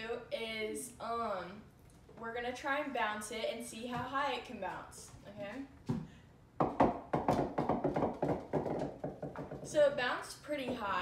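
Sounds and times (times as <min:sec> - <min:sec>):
bouncy balls tapping on wood: 0:05.9 - 0:09.8, 0:10.6 - 0:11.0.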